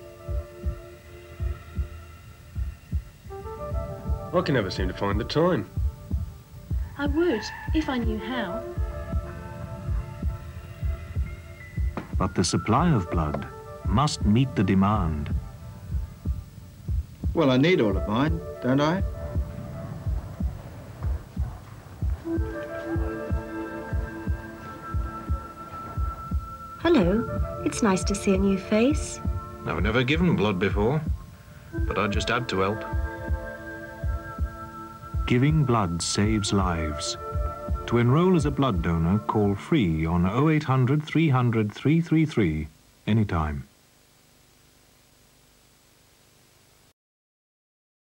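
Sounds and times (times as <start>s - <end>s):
heartbeat thumps: 0.0s - 40.2s
synthesizer drone: 5.7s - 39.3s.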